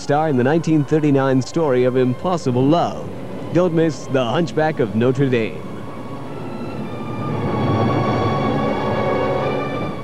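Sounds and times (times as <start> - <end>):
sustained music chord: 0.0 - 10.0.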